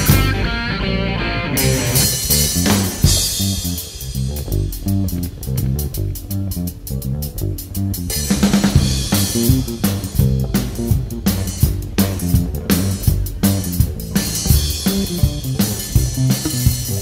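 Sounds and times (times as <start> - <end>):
bass guitar notes: 0.0 - 17.0
electric guitar: 0.0 - 17.0
drum and cymbal strikes: 1.6 - 5.6, 8.1 - 17.0.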